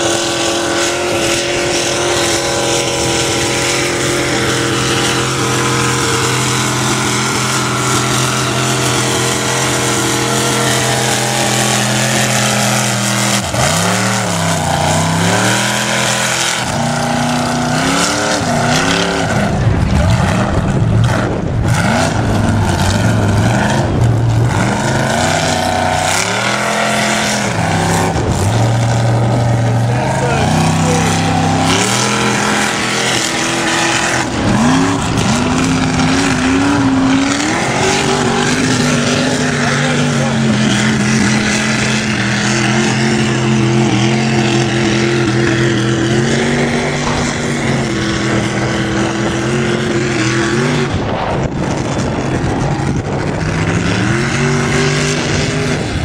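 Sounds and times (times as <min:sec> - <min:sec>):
truck engine labouring and revving: 0:00.0 - 0:56.0.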